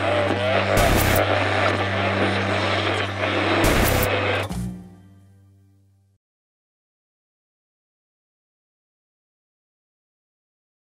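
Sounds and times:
low droning hum: 0.0s - 5.7s.

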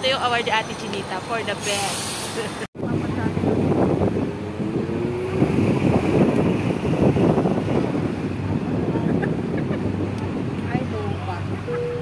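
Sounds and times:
bus engine running: 0.0s - 12.0s
wind buffeting microphone: 2.8s - 12.0s
people laughing: 8.9s - 9.9s.

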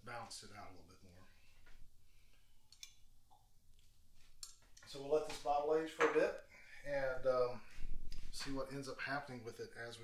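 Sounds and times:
man speaking: 0.0s - 1.3s, 4.8s - 10.0s.

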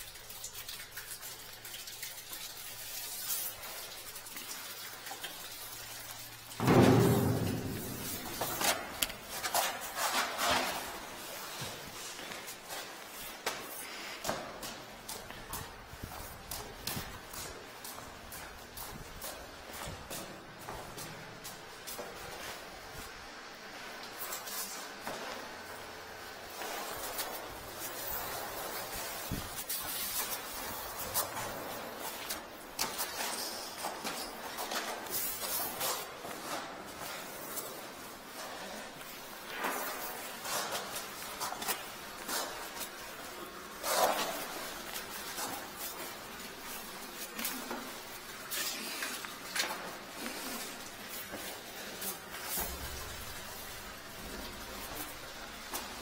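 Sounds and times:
knocks and clatters in concrete pit: 0.0s - 56.0s.

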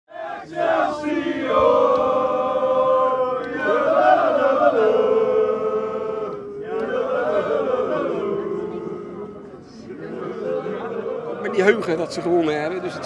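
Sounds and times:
football supporters singing a chant: 0.1s - 13.0s.

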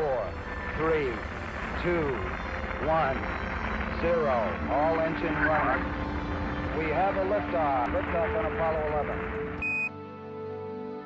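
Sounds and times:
rocket engines rumbling: 0.0s - 9.6s.

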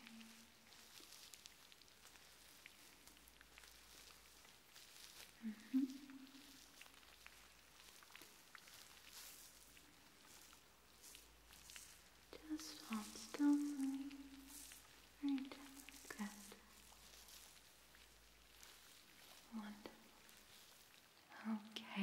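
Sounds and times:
fingers rustling in hair: 0.0s - 21.2s
woman humming: 5.4s - 6.4s.

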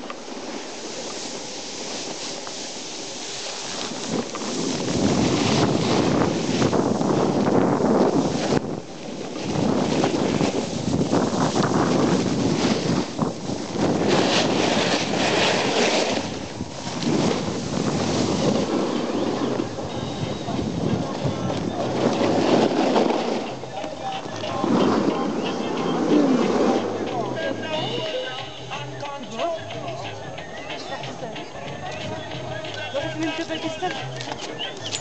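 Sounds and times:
wind buffeting microphone: 2.4s - 28.1s.

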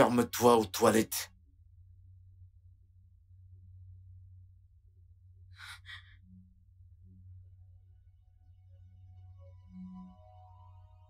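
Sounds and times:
low steady hum: 0.0s - 11.0s
woman sighing: 5.6s - 6.2s.

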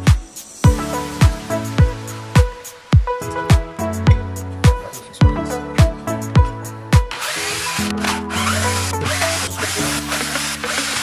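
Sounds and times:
background music: 0.0s - 11.0s
cordless drill running: 7.1s - 11.0s.

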